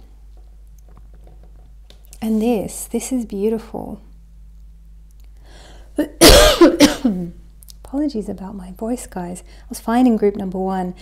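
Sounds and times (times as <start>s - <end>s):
woman coughing hoarsely: 6.0s - 7.4s.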